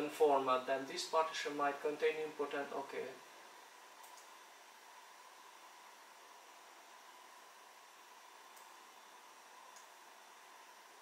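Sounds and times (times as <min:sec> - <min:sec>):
faint room hiss: 0:00.0 - 0:11.0
thin steady high hum: 0:00.0 - 0:11.0
computer mouse clicks: 0:04.0 - 0:04.4, 0:08.5 - 0:08.8, 0:09.7 - 0:10.0.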